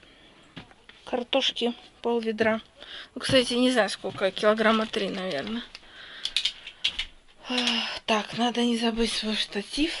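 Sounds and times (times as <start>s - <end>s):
woman's voice: 1.1s - 5.8s, 7.4s - 10.0s.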